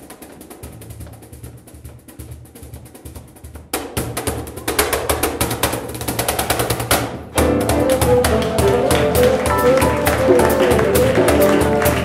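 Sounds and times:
rapid percussion strokes: 0.0 - 12.0
jazz quartet playing: 7.3 - 12.0.

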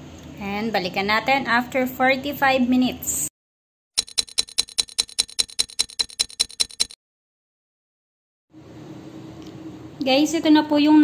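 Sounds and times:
clock ticking: 4.0 - 7.0.

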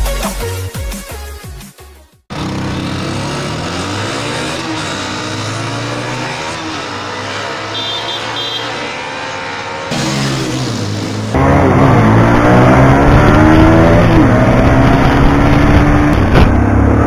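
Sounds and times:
motorcycle engines revving: 2.3 - 17.0.

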